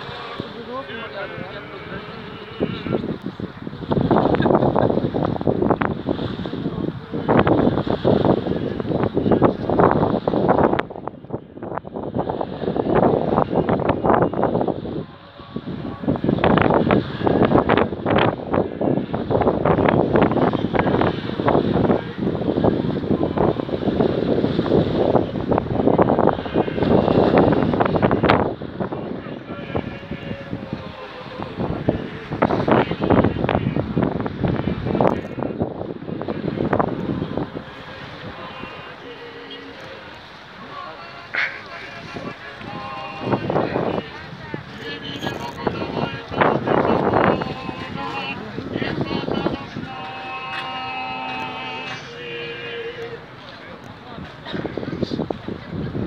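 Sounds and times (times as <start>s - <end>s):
crowd voices: 0.0s - 56.0s
wind buffeting microphone: 0.0s - 56.0s.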